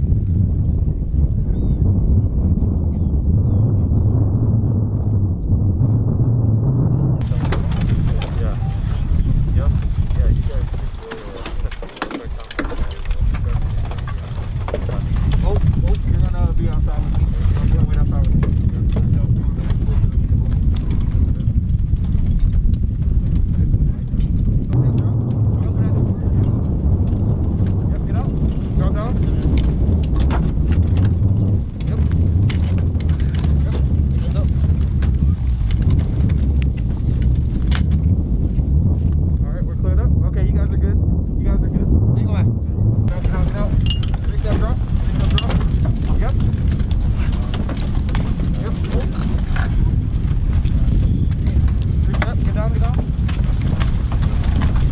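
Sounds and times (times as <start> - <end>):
steady low rumble: 0.0 - 54.9.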